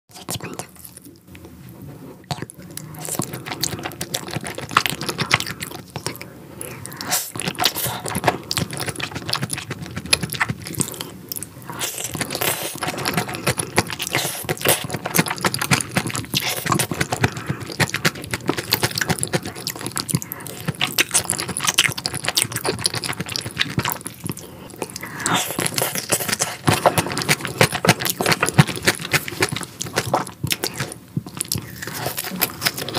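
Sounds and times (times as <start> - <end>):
close chewing: 2.2 - 32.9.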